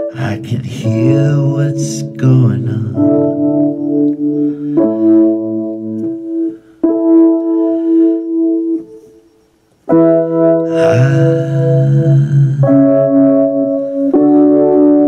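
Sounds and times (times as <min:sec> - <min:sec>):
keyboard playing held chords: 0:00.0 - 0:15.0.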